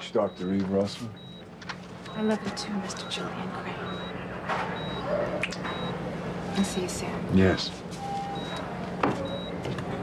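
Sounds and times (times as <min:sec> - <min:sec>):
patient monitor beeping: 0:00.0 - 0:07.0, 0:08.0 - 0:09.7
steady low hum: 0:00.0 - 0:10.0.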